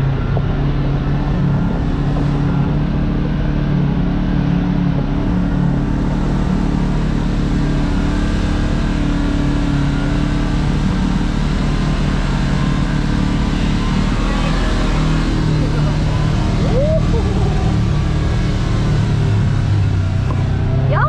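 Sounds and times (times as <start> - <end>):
engine running steadily: 0.0 - 21.0.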